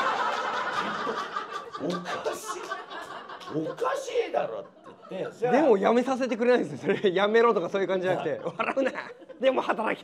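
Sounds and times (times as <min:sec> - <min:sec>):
men laughing: 0:00.0 - 0:07.3, 0:08.0 - 0:10.0.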